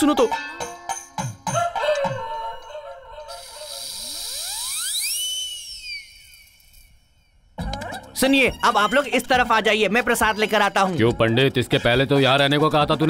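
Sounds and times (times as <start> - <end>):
whistling whoosh: 3.3 - 7.6.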